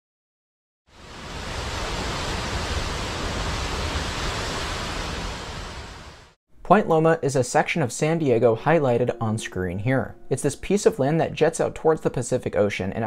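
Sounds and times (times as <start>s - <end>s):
steady rushing noise: 1.0s - 6.4s.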